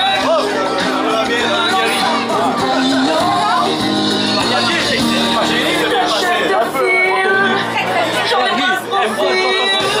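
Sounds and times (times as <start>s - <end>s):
crowd talking: 0.0s - 10.0s
music with long held notes: 0.0s - 10.0s.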